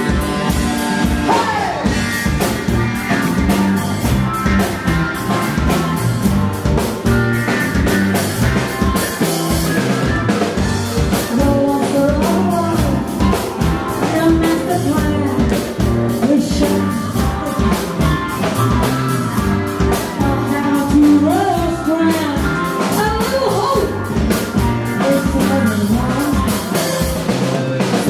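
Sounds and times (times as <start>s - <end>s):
drum kit beat: 0.0s - 28.0s
electric bass: 0.0s - 28.0s
person singing: 1.2s - 2.0s, 11.1s - 18.7s, 19.9s - 24.2s, 24.9s - 27.0s.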